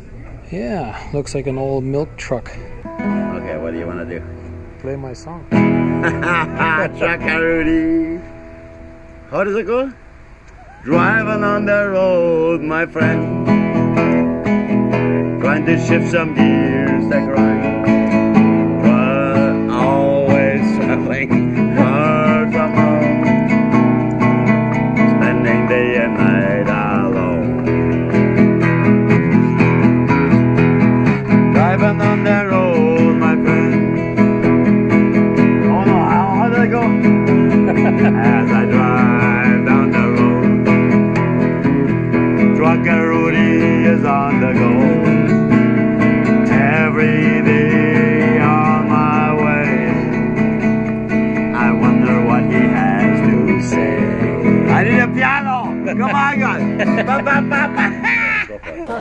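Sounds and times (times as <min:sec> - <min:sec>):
classical guitar strumming: 0:02.7 - 0:59.0
man singing: 0:06.1 - 0:08.3, 0:10.8 - 0:29.7, 0:31.5 - 0:58.2.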